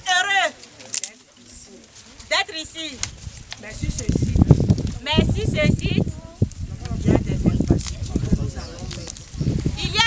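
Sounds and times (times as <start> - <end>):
woman preaching: 0.0 - 0.6, 2.3 - 3.0, 5.0 - 6.3, 9.8 - 10.0
crowd voices: 0.0 - 10.0.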